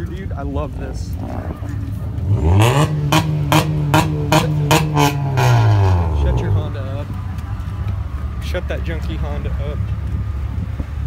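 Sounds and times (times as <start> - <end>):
car engine revving: 1.0 - 7.2.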